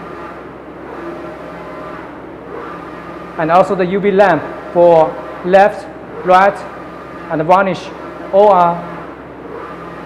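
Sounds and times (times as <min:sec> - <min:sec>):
printer carriage whirring: 0:00.0 - 0:10.0.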